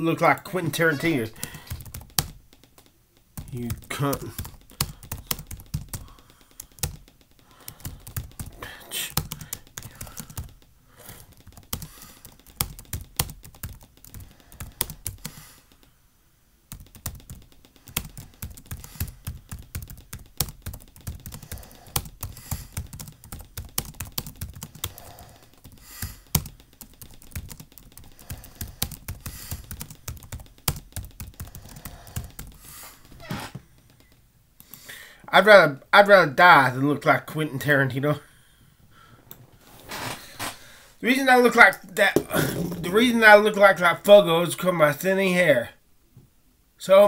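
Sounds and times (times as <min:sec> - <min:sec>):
computer keyboard typing: 0:01.3 - 0:15.9, 0:16.7 - 0:33.1, 0:33.7 - 0:34.9.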